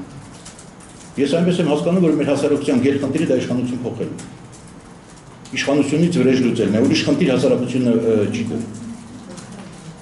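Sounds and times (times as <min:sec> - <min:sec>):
faint room hum: 0:00.0 - 0:10.0
man speaking: 0:01.2 - 0:04.3, 0:05.6 - 0:08.8.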